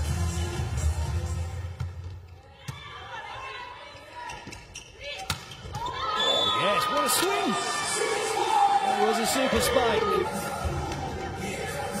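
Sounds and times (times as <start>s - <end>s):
crowd cheering and shouting: 5.7s - 12.0s.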